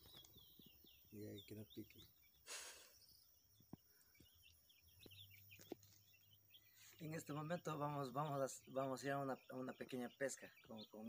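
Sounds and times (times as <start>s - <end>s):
small birds chirping: 0.0s - 11.0s
brief hiss: 2.4s - 3.0s.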